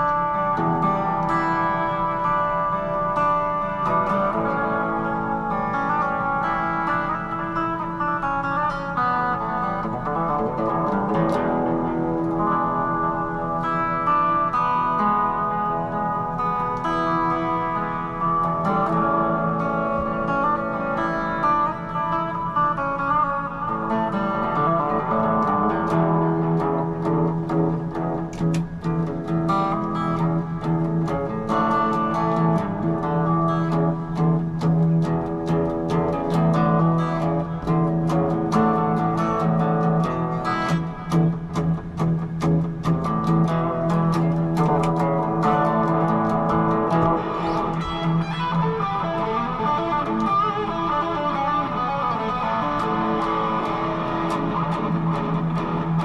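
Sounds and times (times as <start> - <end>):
electric guitar solo: 0.0 - 56.0.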